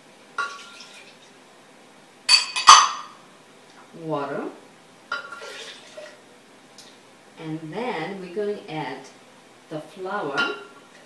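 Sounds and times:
glass cup clinking: 2.3s - 3.2s.

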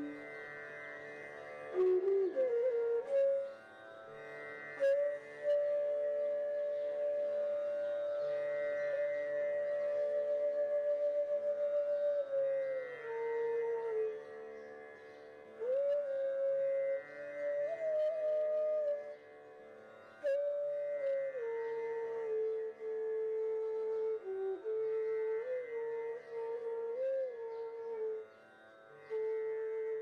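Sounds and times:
bamboo flute long note: 0.0s - 0.4s, 1.6s - 3.6s, 4.8s - 14.5s, 15.6s - 19.2s, 20.2s - 28.4s, 29.0s - 30.0s
soft sustained accompaniment: 0.0s - 30.0s.

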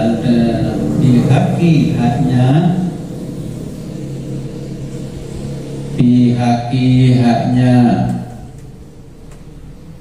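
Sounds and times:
man chanting melodically: 0.0s - 8.6s.

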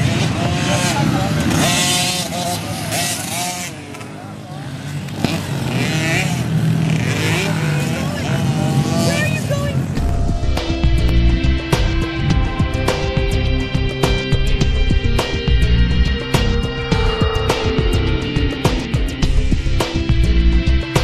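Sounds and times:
dirt bike engines revving: 0.0s - 20.7s.

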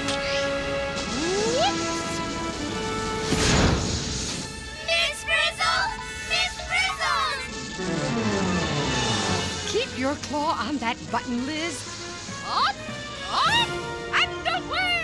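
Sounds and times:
rising glide: 0.0s - 14.0s
cartoon background music: 0.0s - 15.0s
whooshing crash: 3.0s - 4.7s.

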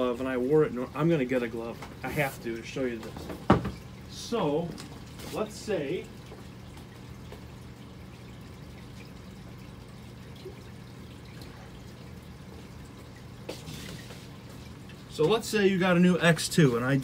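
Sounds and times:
water trickling: 0.0s - 17.0s.

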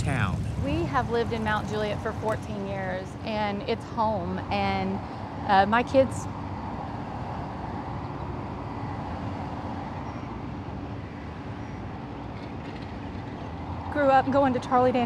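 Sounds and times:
roadside traffic drone: 0.0s - 15.0s.

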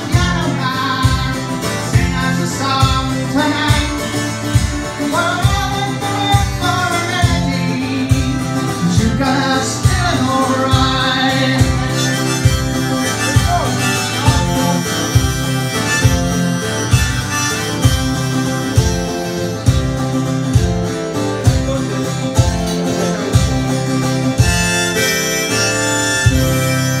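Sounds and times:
acoustic guitar strumming: 0.0s - 27.0s
harmonica melody: 0.0s - 27.0s.

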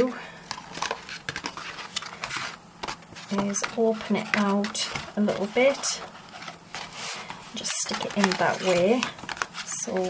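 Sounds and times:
card rustling and tapping: 0.4s - 10.0s.

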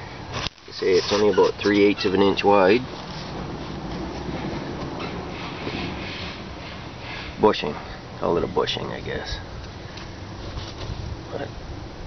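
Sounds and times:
background rumble and hiss: 0.0s - 12.0s.

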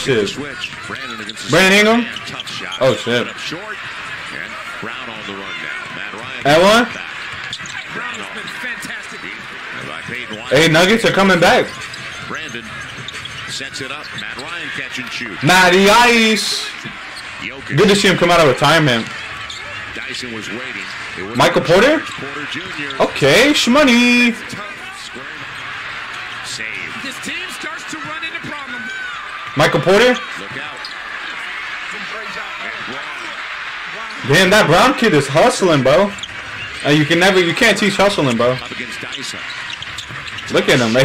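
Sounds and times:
commentator talking: 0.0s - 31.0s, 31.8s - 41.0s
arena crowd noise: 0.0s - 41.0s
basketball dribbling on court: 7.1s - 10.4s, 36.0s - 41.0s.

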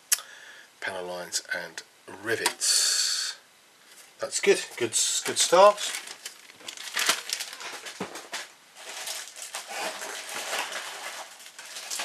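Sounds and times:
plastic bags crinkling: 4.8s - 12.0s.

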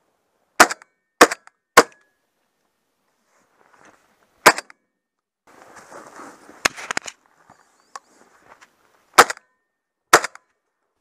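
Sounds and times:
shotgun shots: 0.6s - 2.0s, 4.4s - 4.7s, 9.2s - 9.4s, 10.1s - 10.4s.

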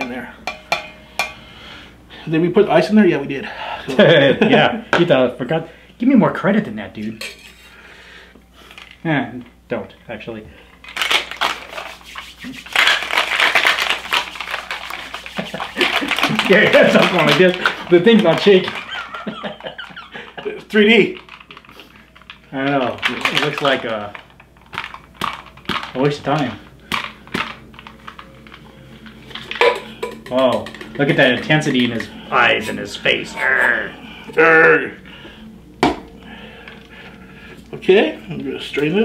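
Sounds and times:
ice rattling in cocktail shaker: 10.9s - 32.9s.

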